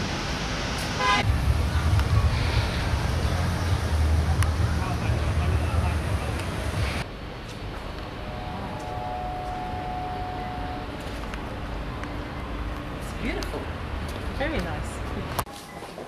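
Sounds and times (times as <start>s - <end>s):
heavy low rumble: 0.0s - 12.0s.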